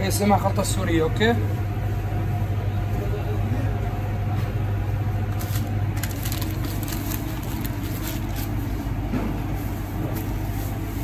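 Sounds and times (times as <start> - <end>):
kitchen equipment hum: 0.0 - 11.0.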